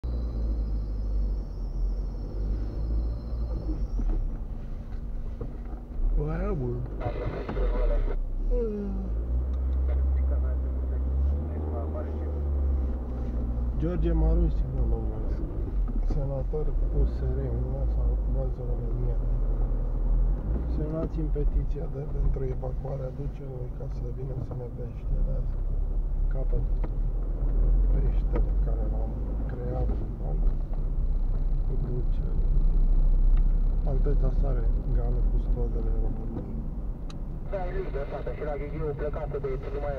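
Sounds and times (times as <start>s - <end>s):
car engine and road noise: 0.0s - 39.9s.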